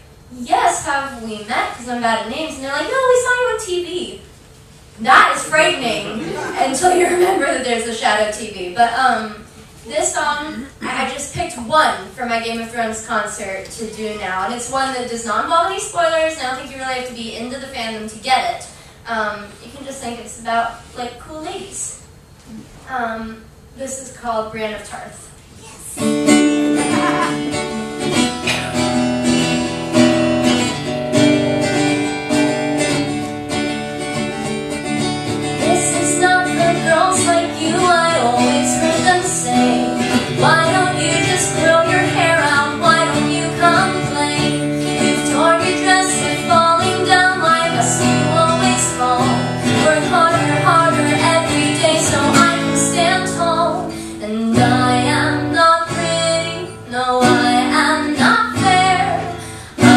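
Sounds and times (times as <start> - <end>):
acoustic guitar strumming: 5.0 - 8.4, 26.0 - 59.9
woman singing: 35.6 - 59.9.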